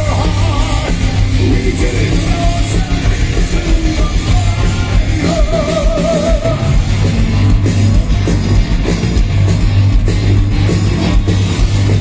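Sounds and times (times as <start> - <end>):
bass guitar: 0.0 - 12.0
drum kit with cymbals: 0.0 - 12.0
electric guitars: 0.0 - 12.0.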